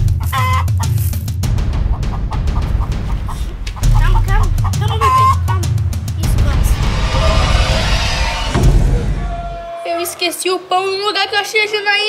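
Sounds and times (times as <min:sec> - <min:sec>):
background music with low beat: 0:00.0 - 0:09.4
hen clucking and squawking: 0:00.1 - 0:01.0, 0:01.8 - 0:05.8.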